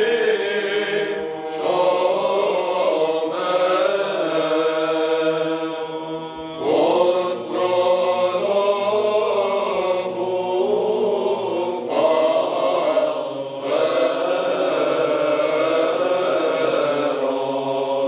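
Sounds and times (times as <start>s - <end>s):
held low vocal drone: 0.0s - 18.0s
voices chanting slow melody: 0.0s - 18.0s.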